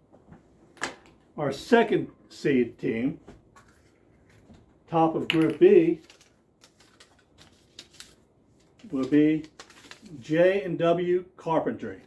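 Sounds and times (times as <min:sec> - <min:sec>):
paper crinkling: 0:05.8 - 0:10.3.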